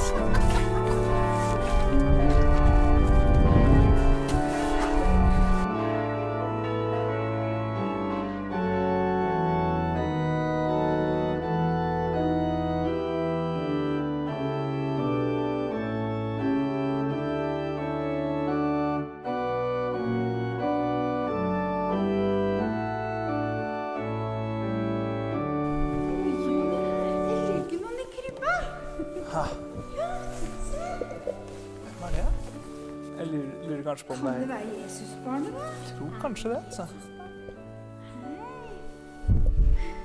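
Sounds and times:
church organ chords: 0.0s - 27.9s.

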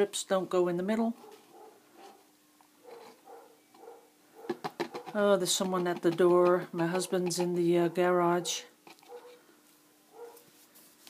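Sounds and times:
dog barking: 1.2s - 2.2s, 2.8s - 4.6s, 8.4s - 9.4s, 10.1s - 10.5s.

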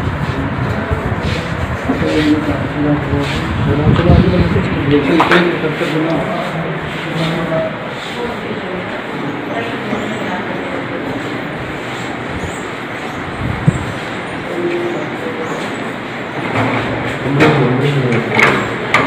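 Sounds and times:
people chattering: 0.0s - 19.0s
steady background noise: 0.0s - 19.0s.

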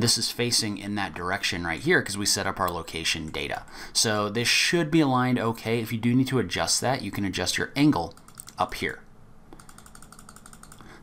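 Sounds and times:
mouse scroll wheel clicking: 8.1s - 8.6s, 9.6s - 10.9s.

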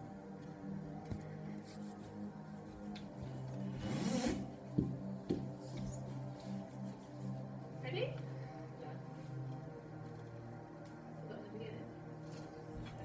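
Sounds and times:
background music with bass: 0.0s - 13.0s.

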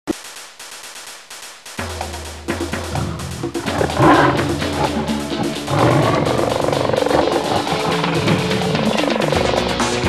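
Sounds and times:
intro music: 1.7s - 10.0s
big cat growl: 2.8s - 10.0s.

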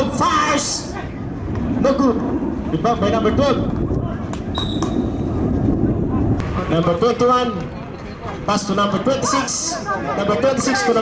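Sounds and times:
low rumble: 0.9s - 7.4s.

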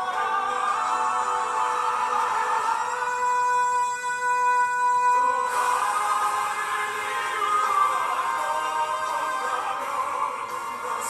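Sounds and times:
male vocal group singing: 0.0s - 11.0s
voice holding a long high note: 0.0s - 11.0s.

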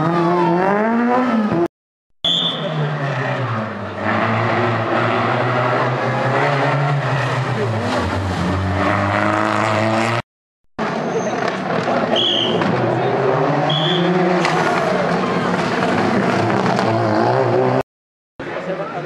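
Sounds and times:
rally car engines passing: 2.5s - 10.2s, 10.8s - 17.8s.

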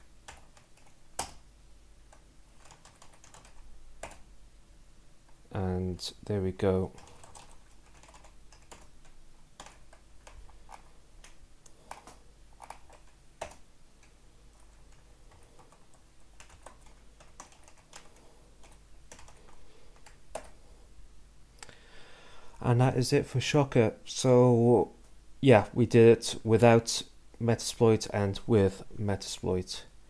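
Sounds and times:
computer keyboard typing: 0.2s - 1.4s, 2.1s - 4.2s, 6.9s - 20.6s.

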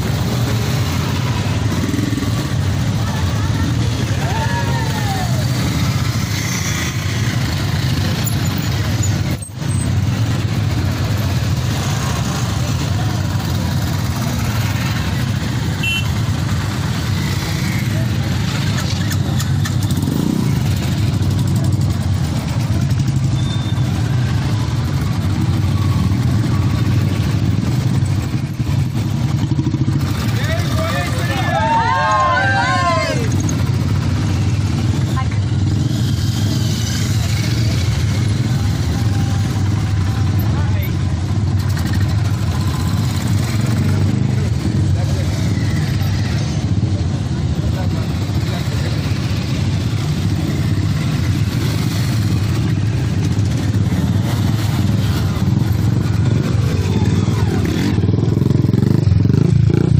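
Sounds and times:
motorcycle engines running: 0.0s - 59.9s
people talking: 2.8s - 5.6s, 30.3s - 33.4s, 37.3s - 41.2s, 44.3s - 45.3s, 56.6s - 58.0s.

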